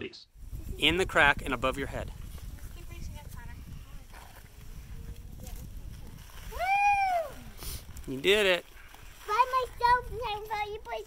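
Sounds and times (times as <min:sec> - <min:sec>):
young child talking: 0:09.3 - 0:11.0.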